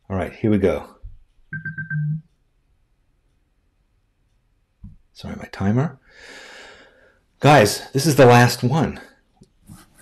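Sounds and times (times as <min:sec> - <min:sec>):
electronic timer beeping: 0:01.5 - 0:02.2.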